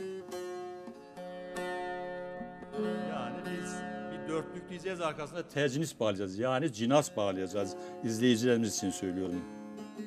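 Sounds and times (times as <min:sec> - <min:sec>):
long-necked lute plucked notes: 0:00.0 - 0:10.0.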